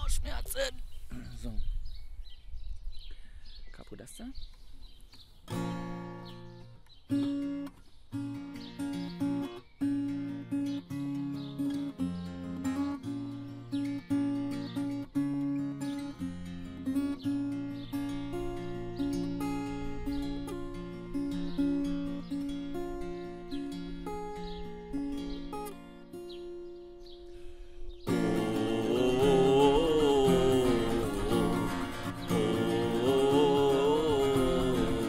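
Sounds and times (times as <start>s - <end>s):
acoustic guitar picking: 5.1s - 35.0s.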